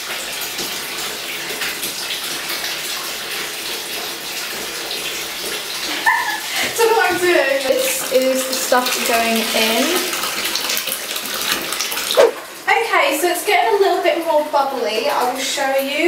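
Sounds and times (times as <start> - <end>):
water pouring into bathtub: 0.0 - 13.5.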